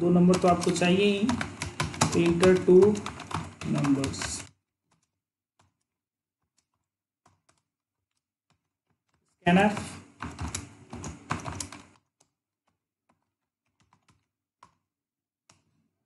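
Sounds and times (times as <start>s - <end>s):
person's voice: 0.0s - 4.5s, 9.4s - 10.1s
computer keyboard keystrokes: 0.2s - 14.9s, 15.5s - 15.8s.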